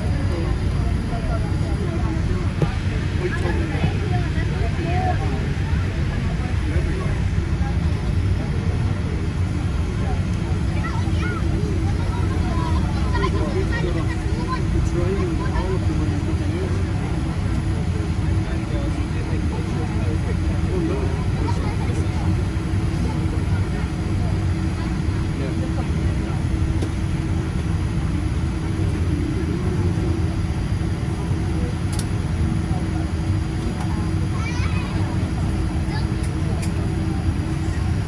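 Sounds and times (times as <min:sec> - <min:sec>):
jet engines idling: 0:00.0 - 0:38.0
passengers talking: 0:00.0 - 0:38.0
steady hum: 0:00.0 - 0:38.0.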